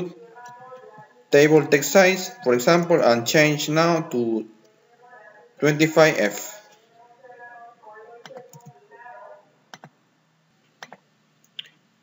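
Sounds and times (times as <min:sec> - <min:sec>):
person murmuring: 0:00.0 - 0:04.4.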